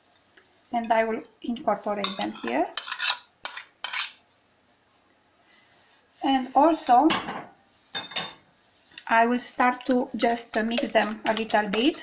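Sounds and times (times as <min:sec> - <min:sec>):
whisk clinking ceramic bowl: 0:10.2 - 0:12.0
whisk scraping bowl: 0:10.2 - 0:12.0.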